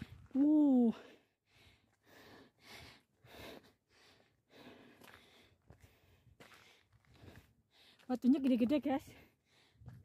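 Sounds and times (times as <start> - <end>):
person breathing: 0.9 - 8.1, 9.2 - 10.0.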